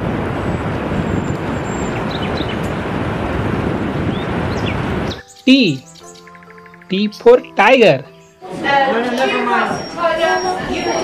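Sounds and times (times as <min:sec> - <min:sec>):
ocean waves washing: 0:00.0 - 0:05.9
faint high chirps: 0:09.3 - 0:11.0.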